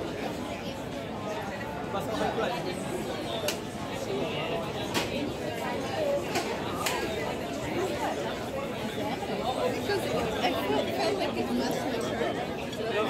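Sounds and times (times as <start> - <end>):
chatter of many conversations: 0.0 - 13.0.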